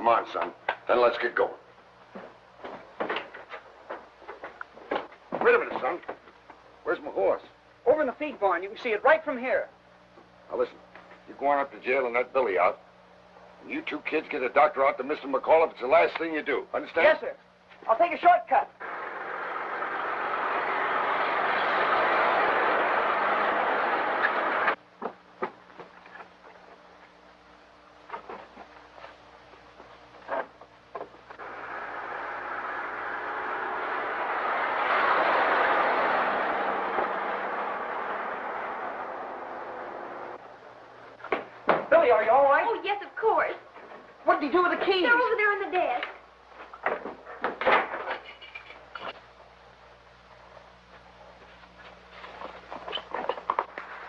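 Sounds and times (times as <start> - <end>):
car engine and road noise rushing: 18.8 - 24.8, 31.4 - 41.2
scuffling: 50.9 - 54.0.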